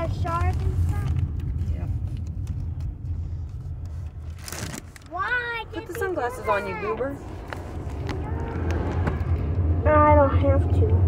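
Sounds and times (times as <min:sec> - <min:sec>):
car rumble inside cabin: 0:00.0 - 0:11.0.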